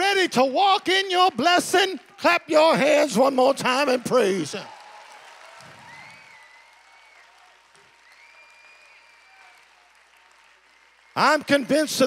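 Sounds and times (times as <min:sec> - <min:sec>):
congregation clapping: 0:00.0 - 0:12.0.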